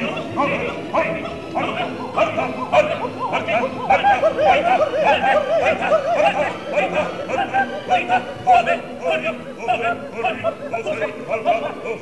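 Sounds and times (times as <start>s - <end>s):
opera singers: 0.0s - 12.0s.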